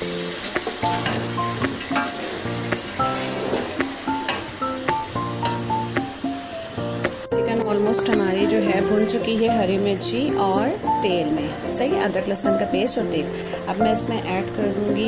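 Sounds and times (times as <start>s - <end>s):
chicken sizzling in hot oil: 0.0s - 15.0s
melodic background music: 0.0s - 15.0s
person speaking: 7.4s - 15.0s.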